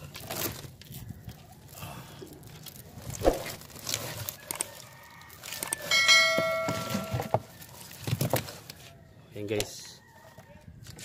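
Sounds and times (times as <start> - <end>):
knocks and rustles: 5.5 - 8.7
bell-like notification chime: 5.9 - 7.4.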